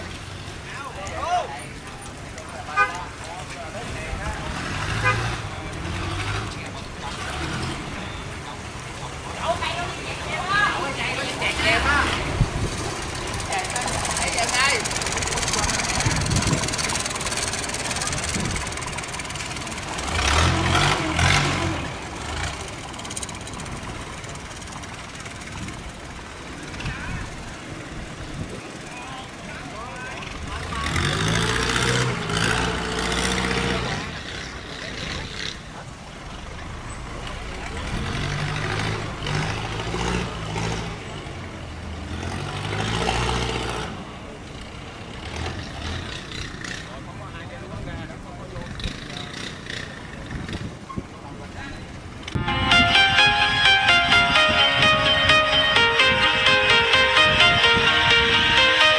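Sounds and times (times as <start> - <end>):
boat engines running: 4.1 - 40.0.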